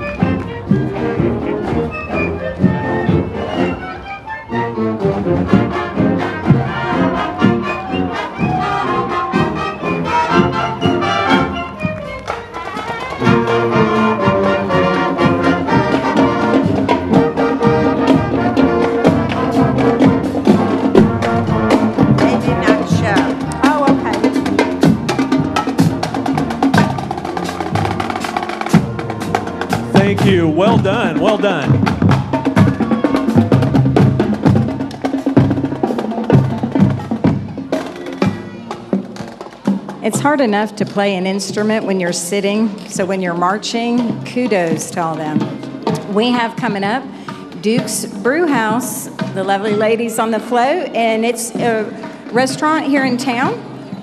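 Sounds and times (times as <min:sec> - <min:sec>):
marching band playing: 0:00.0 - 0:54.0.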